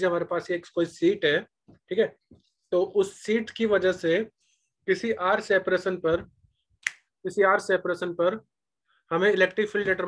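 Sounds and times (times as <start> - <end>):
man speaking: 0.0 - 6.3, 9.1 - 10.0.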